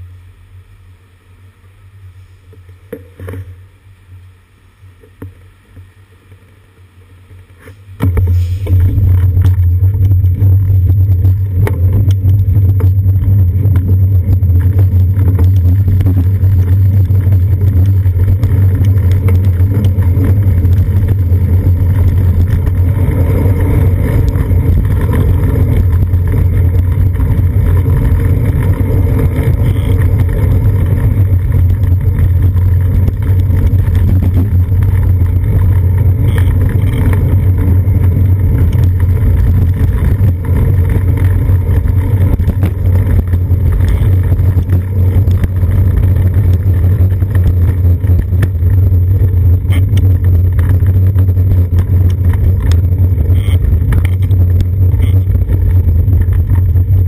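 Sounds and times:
road vibration rumble: 0:00.0 - 0:57.0.

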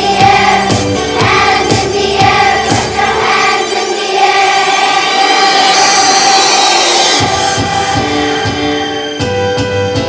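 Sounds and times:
pulsing bass line: 0:00.0 - 0:03.6
children's choir singing: 0:00.0 - 0:09.2.

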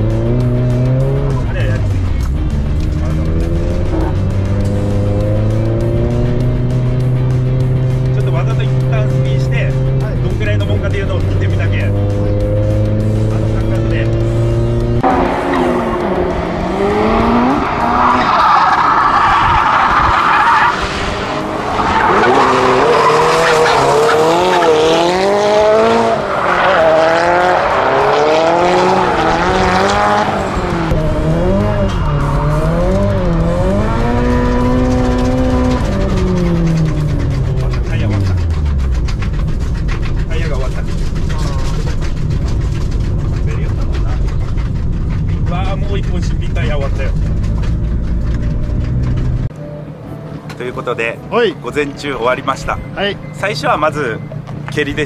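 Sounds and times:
car engine revving: 0:00.0 - 0:50.1
tyres squealing: 0:15.5 - 0:25.1
car engine from inside cabin: 0:29.7 - 0:49.5.

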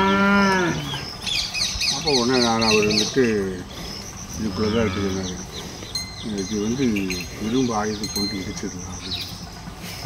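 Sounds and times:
calf mooing: 0:00.0 - 0:01.1, 0:04.4 - 0:05.4.

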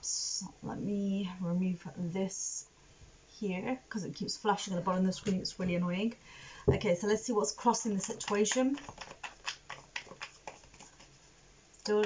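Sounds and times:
cards being shuffled: 0:08.0 - 0:11.2.

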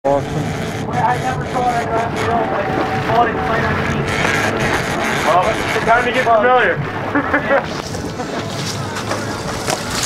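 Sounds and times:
boat engine running: 0:00.0 - 0:10.0
indistinct voices: 0:00.1 - 0:10.0.

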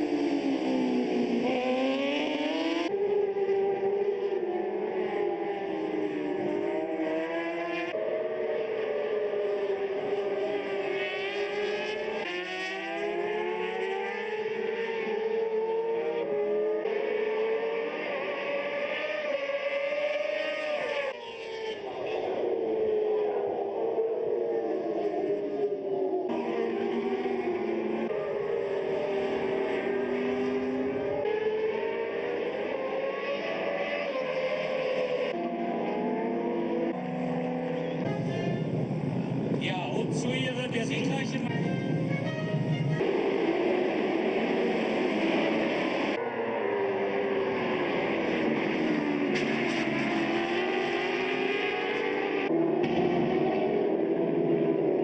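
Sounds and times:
racing motorcycle engines: 0:00.0 - 0:55.0.

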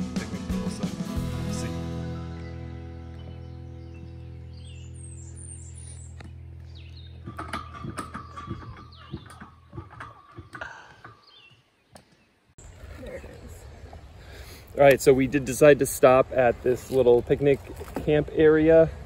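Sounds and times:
background music: 0:00.0 - 0:04.6
birds chirping: 0:00.0 - 0:19.0.

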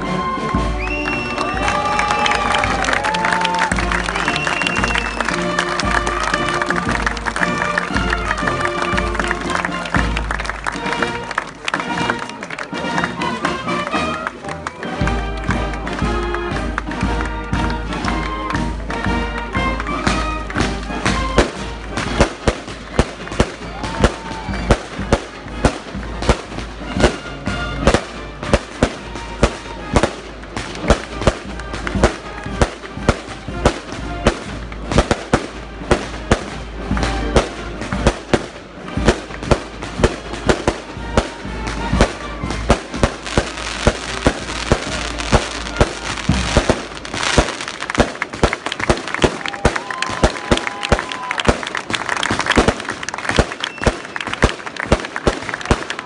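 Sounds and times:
band playing music: 0:00.0 - 0:56.0
firecrackers banging: 0:00.0 - 0:56.0.

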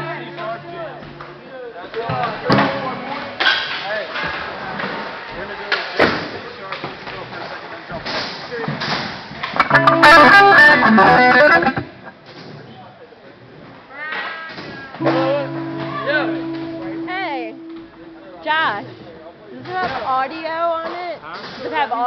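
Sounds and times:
electric guitar chord: 0:00.0 - 0:00.9, 0:09.6 - 0:12.0, 0:15.0 - 0:19.0
voices chattering: 0:09.6 - 0:12.2.

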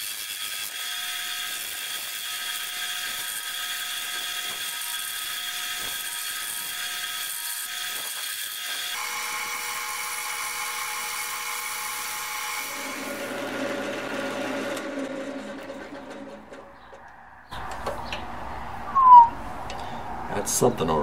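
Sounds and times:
gouge cutting wood: 0:00.0 - 0:16.1
lathe whining: 0:08.8 - 0:16.7.

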